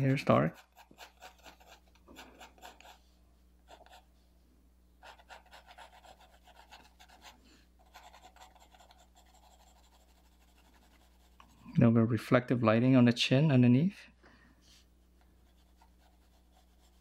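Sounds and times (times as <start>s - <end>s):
pencil shading on paper: 0.0s - 3.0s, 3.7s - 4.1s, 5.0s - 11.6s, 15.4s - 17.0s.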